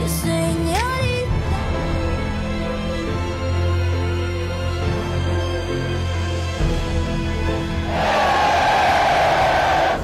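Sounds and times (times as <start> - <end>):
crowd cheering and shouting: 7.8 - 10.0.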